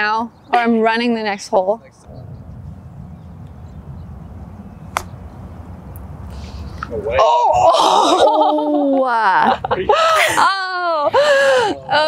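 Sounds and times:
putter striking golf ball: 0:04.9 - 0:05.2.

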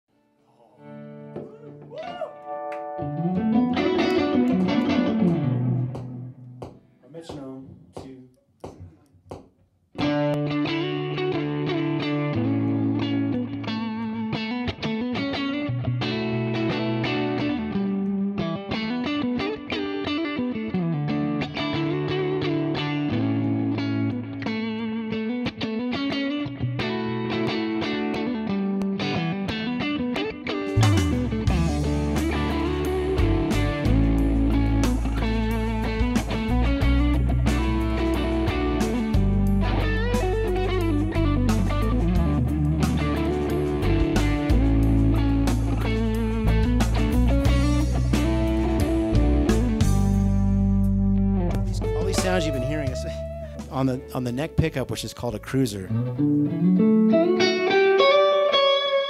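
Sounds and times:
electric guitar lead melody: 0:00.8 - 0:07.0, 0:10.0 - 0:59.0
band backing track: 0:01.3 - 0:07.5, 0:30.7 - 0:58.3.

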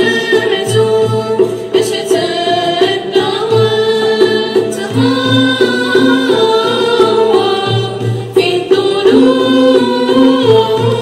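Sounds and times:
girls singing in group: 0:00.0 - 0:11.0
ouds mandolins and violin playing: 0:00.0 - 0:11.0.

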